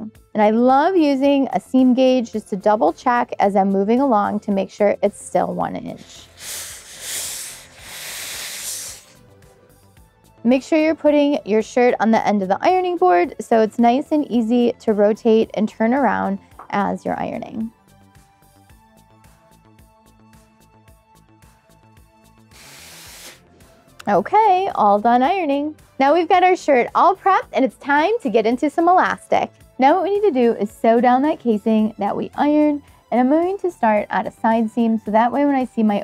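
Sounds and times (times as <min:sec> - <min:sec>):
quiet background music: 0:00.0 - 0:36.0
steam iron hissing: 0:06.1 - 0:09.2, 0:22.5 - 0:23.4.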